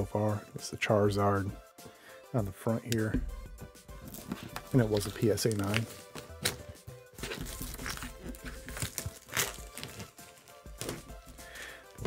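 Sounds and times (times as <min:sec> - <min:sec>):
quiet background music: 0:00.0 - 0:12.0
plastic packaging crinkling: 0:04.1 - 0:11.4.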